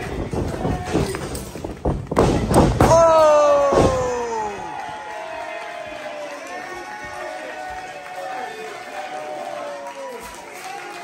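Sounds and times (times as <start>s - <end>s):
heavy thuds in wrestling ring: 0.2s - 4.3s.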